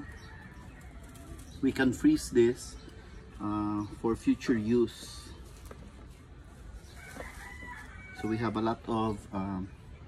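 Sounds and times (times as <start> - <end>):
faint rooster crowing: 0.0 - 1.6, 6.8 - 8.7.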